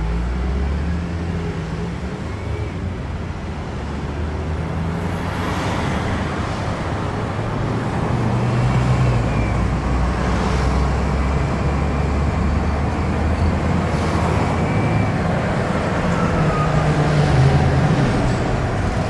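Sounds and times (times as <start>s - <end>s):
car road and engine rumble: 0.0s - 19.0s.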